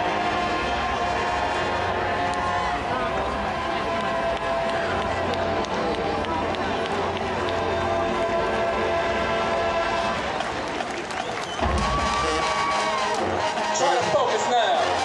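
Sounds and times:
brass band sustained chords: 0.0s - 15.0s
crowd chatter: 0.0s - 15.0s.

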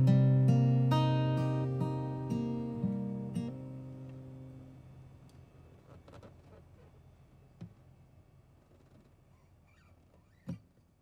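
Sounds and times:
faint low hum: 0.0s - 11.0s
faint squeak: 8.7s - 10.9s.

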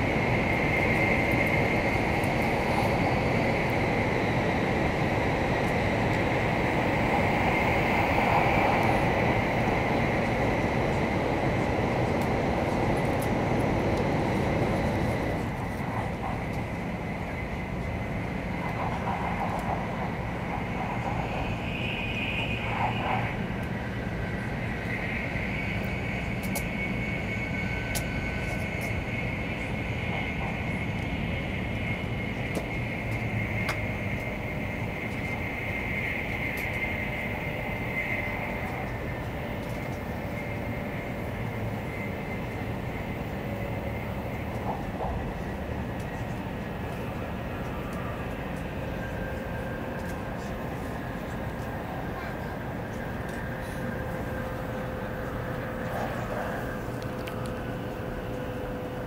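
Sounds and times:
high whine: 0.0s - 59.0s
train wheels rumbling: 0.0s - 59.0s.

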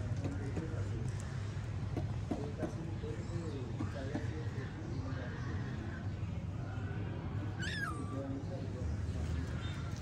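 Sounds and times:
kitten meowing: 7.6s - 8.2s.

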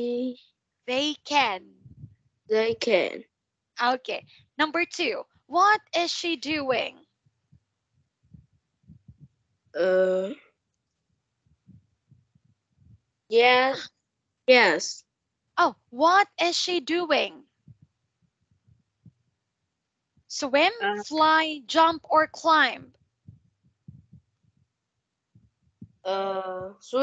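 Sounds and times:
faint low thumps: 1.8s - 3.0s, 8.2s - 9.4s, 17.6s - 19.3s, 22.8s - 24.5s, 25.3s - 26.9s.

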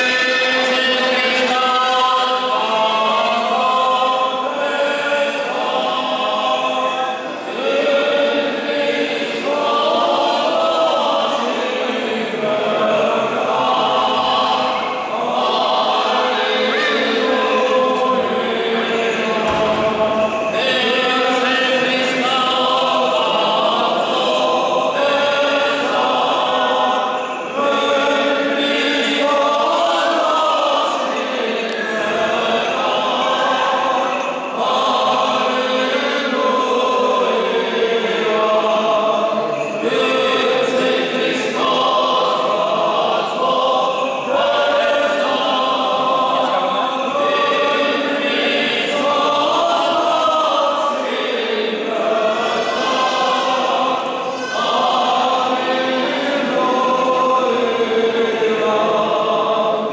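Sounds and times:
group of voices chanting: 0.0s - 59.9s.

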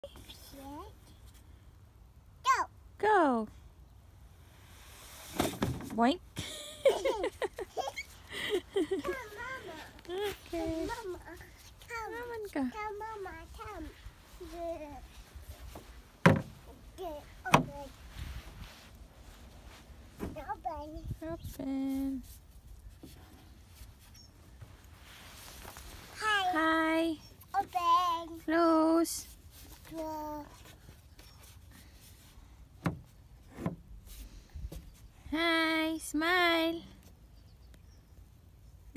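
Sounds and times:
child rustling in plastic structure: 6.9s - 26.6s
knocks and bump on slide: 15.7s - 16.7s
wind rumble on microphone: 18.0s - 18.8s.

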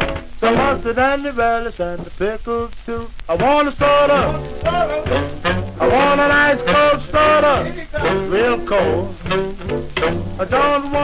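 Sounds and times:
doo-wop record playing: 0.0s - 11.0s.

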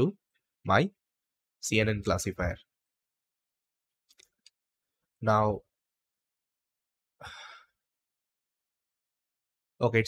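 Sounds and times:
person sighing: 7.2s - 7.8s.

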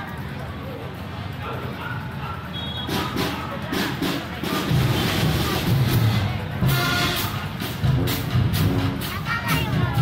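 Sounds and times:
crowd chatter: 0.0s - 10.0s
low brass horns: 2.5s - 9.2s
percussion strokes: 2.8s - 10.0s.

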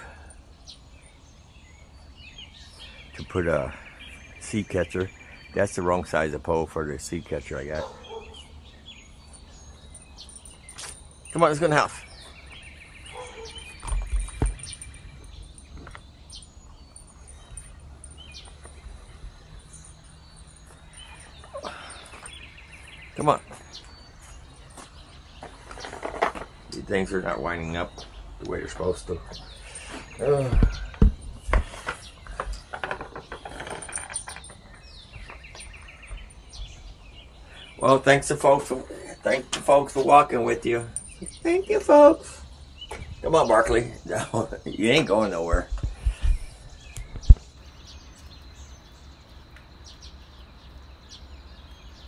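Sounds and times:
faint bird chirps: 0.0s - 52.0s
songbird trill: 0.0s - 52.0s
dog leash metallic clicks and rattles: 31.9s - 36.6s.

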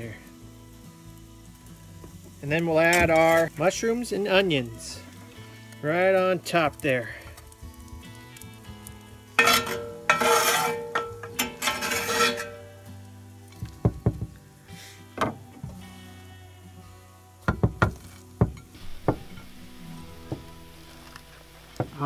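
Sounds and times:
quiet background music: 0.0s - 22.0s
metal spatula scraping: 9.4s - 12.8s.

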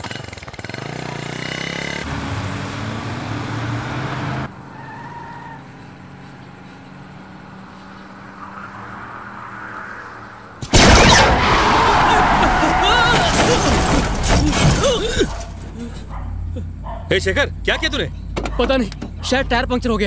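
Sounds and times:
motorcycle engine revving: 0.0s - 4.6s
car engine humming: 0.6s - 20.0s.

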